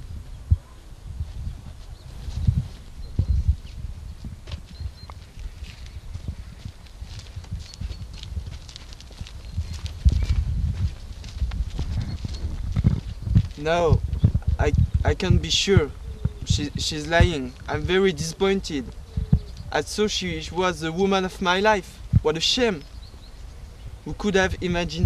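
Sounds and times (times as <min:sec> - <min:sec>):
wind buffeting microphone: 0:00.0 - 0:25.0
footsteps on gravel: 0:04.4 - 0:14.2.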